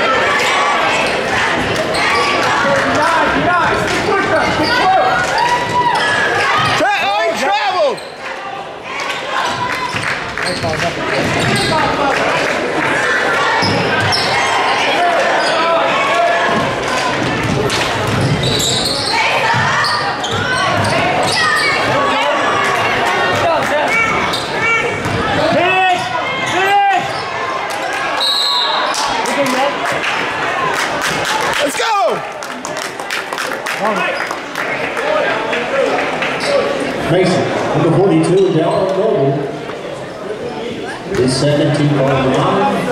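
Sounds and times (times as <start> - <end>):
sneakers squeaking: 4.2 - 6.8, 7.9 - 8.2, 9.4 - 12.0, 13.5 - 15.9, 16.5 - 22.1, 23.9 - 29.2, 36.4 - 36.8
basketball bouncing on wooden floor: 17.2 - 18.6, 20.3 - 21.4
people shouting: 18.5 - 29.8.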